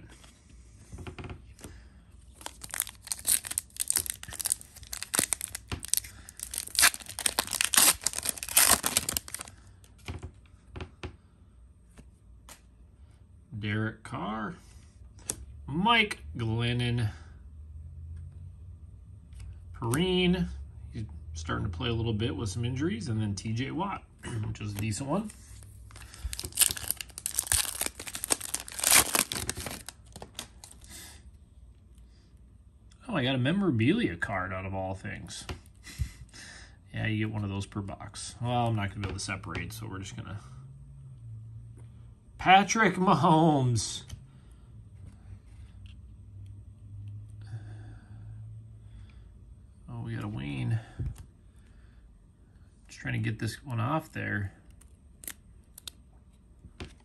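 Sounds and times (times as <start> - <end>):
plastic wrapper tearing and crinkling: 2.3 - 9.6, 25.6 - 30.9, 54.8 - 56.0.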